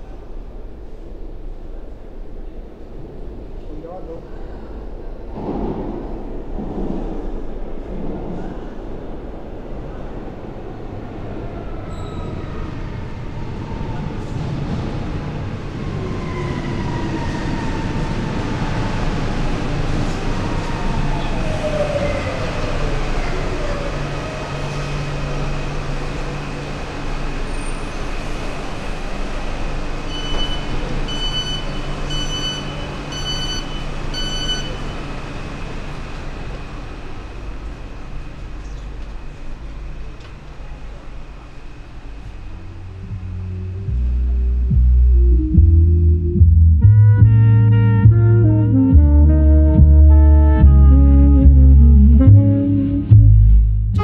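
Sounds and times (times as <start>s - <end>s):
metro train rumble and whine: 0.0s - 54.0s
electronic door warning beeps: 30.1s - 34.9s.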